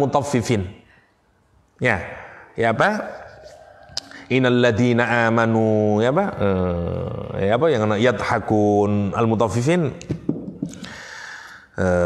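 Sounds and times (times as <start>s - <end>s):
man breathing in: 3.4s - 4.3s, 10.6s - 11.8s.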